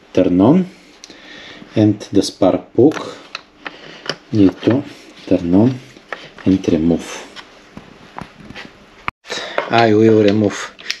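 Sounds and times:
man speaking: 0:01.8 - 0:03.2, 0:04.3 - 0:07.4, 0:09.7 - 0:10.8.

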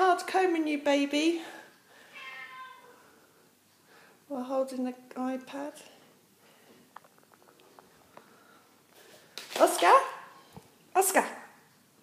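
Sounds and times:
cat meowing quietly: 0:02.1 - 0:03.0.

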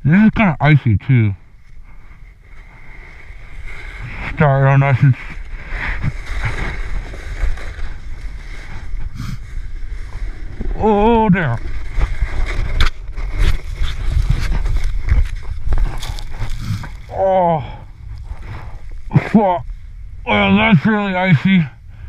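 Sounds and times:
wind buffeting microphone: 0:01.4 - 0:22.0
sled scraping over icy snow: 0:01.7 - 0:21.7.

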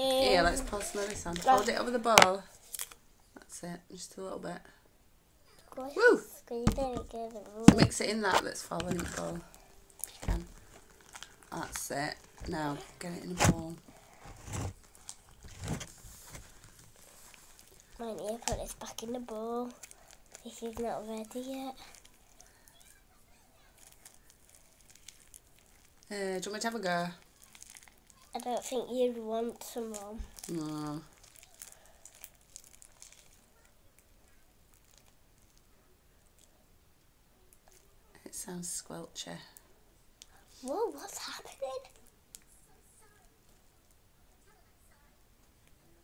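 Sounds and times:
squelchy slime crackling: 0:05.8 - 0:35.6
slime squishing by hand: 0:23.7 - 0:26.2, 0:27.1 - 0:28.8, 0:29.4 - 0:35.7.

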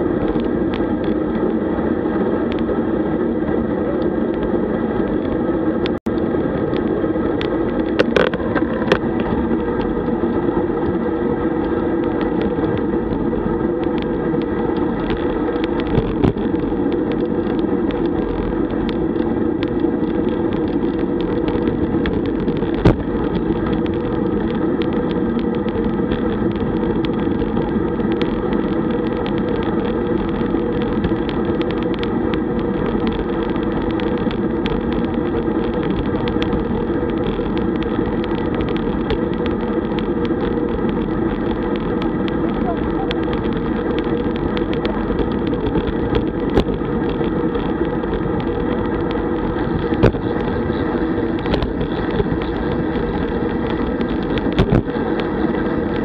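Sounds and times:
wind and road noise: 0:00.0 - 0:56.0.

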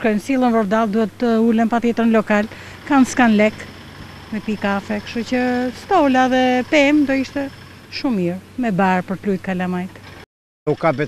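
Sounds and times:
woman talking: 0:00.0 - 0:03.7, 0:04.3 - 0:10.0.

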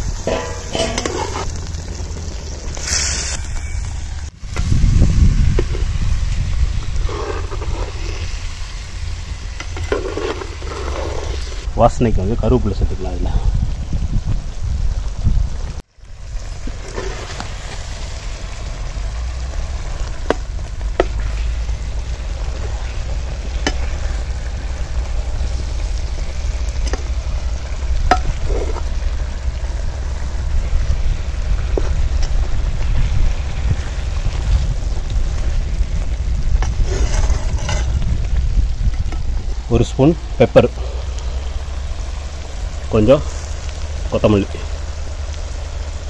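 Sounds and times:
food sizzling in a pot: 0:00.0 - 0:11.7, 0:16.0 - 0:46.0.

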